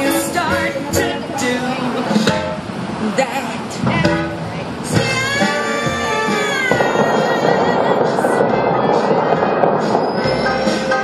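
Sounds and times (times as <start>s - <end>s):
fountain water jets splashing: 0.0s - 11.0s
music over loudspeakers: 0.0s - 11.0s.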